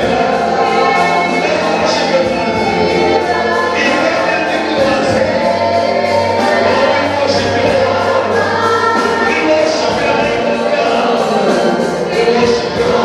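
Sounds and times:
group singing gospel song: 0.0 - 13.0.

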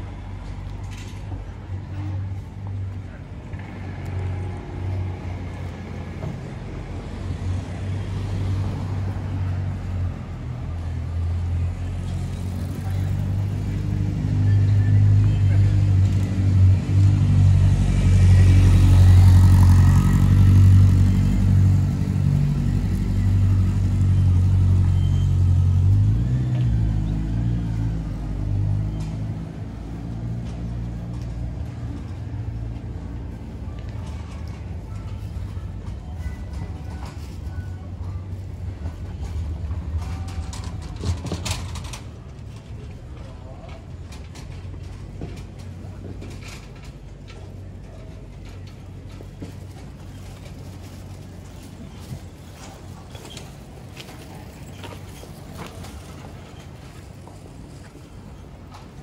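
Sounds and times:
vehicle engine passing: 8.0 - 35.0.

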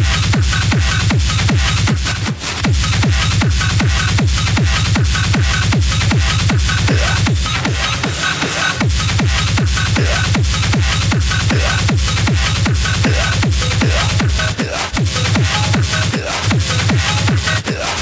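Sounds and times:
four-on-the-floor kick drum: 0.0 - 8.2, 8.8 - 18.0
hard techno music: 0.0 - 18.0
synth layers: 0.0 - 18.0.

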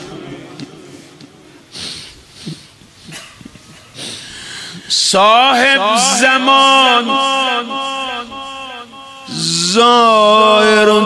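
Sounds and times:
gasping breath: 1.0 - 5.0.

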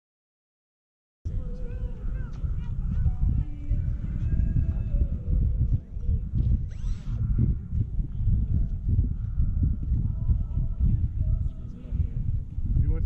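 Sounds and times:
low rumble: 1.3 - 13.0
model airplane motors whining: 6.7 - 7.2.

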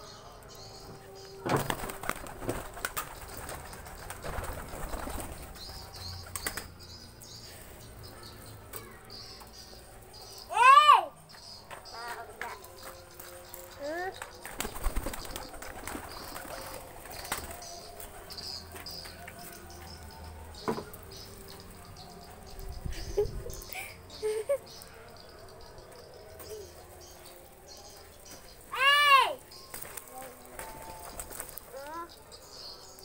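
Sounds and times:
faint bird sounds: 0.0 - 33.0
pigeons flapping wings: 1.5 - 6.8, 14.1 - 18.6, 29.7 - 31.8
high-pitched voice calling out: 10.5 - 11.2, 28.7 - 29.4.

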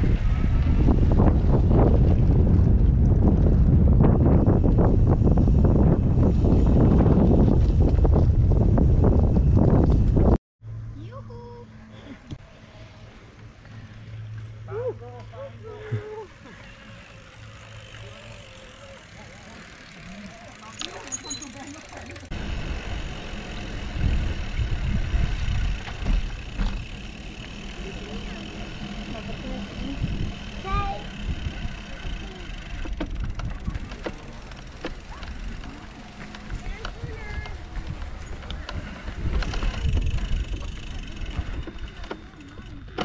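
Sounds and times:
tyres rolling and wind rumble: 0.0 - 10.4, 16.3 - 43.0
faint voices: 12.0 - 22.4, 24.4 - 43.0.

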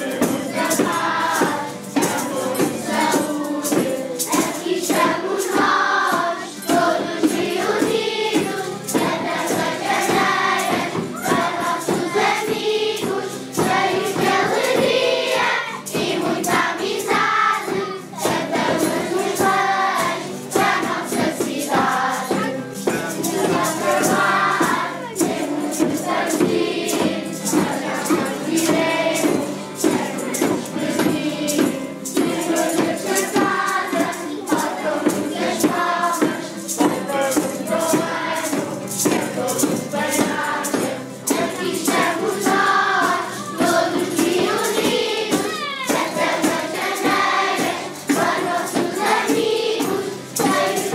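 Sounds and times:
children singing carols as a choir: 0.0 - 50.9
jingling percussion beat: 0.0 - 50.9.

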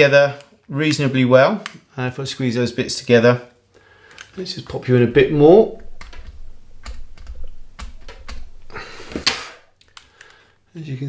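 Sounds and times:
resin parts clicking and tapping: 4.1 - 10.4
low handling rumble: 4.8 - 9.2.

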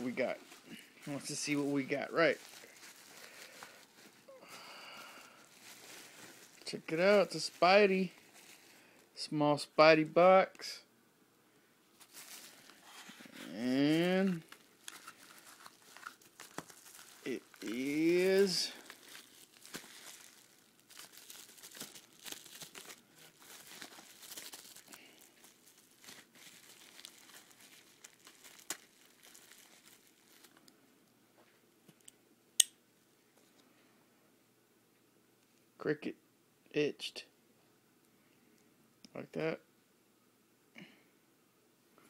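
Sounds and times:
bubble wrap crinkling: 0.0 - 9.1, 11.9 - 30.8.

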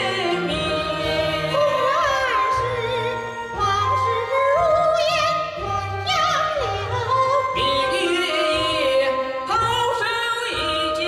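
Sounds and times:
instrumental accompaniment: 0.0 - 11.0
woman singing with wide vibrato: 0.0 - 11.0.

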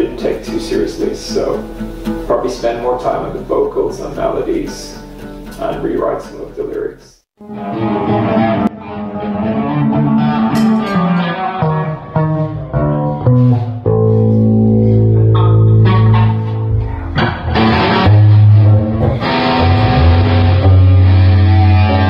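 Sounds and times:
electric guitar and bass riff: 7.4 - 22.0.

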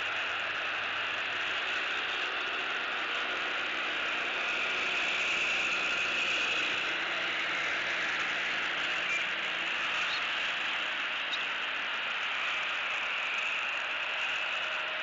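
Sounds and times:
steady outdoor hiss: 0.0 - 15.0.

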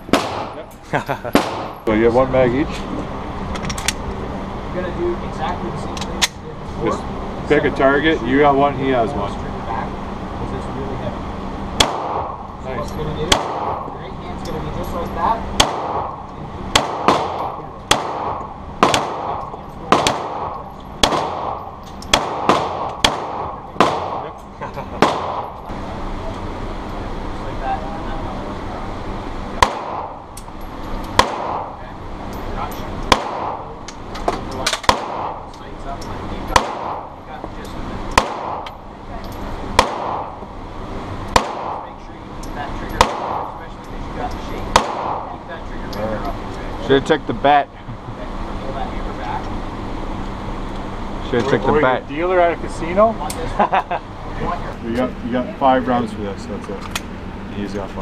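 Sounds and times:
pistol shots echoing indoors: 1.3 - 1.7, 16.7 - 24.2.

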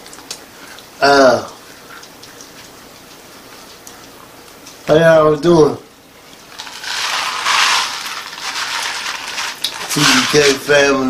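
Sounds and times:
background hiss: 4.6 - 11.0.

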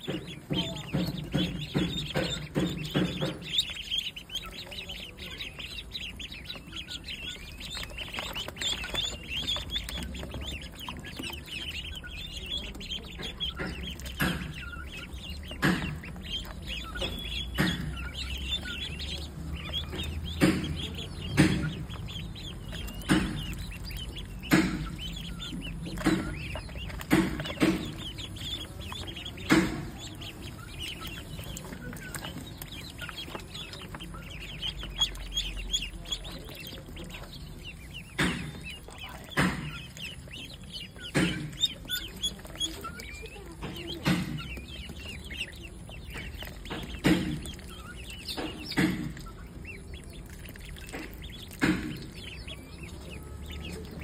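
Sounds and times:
ducklings dabbling in metal tray: 0.0 - 54.0
ducklings peeping: 0.0 - 54.0.

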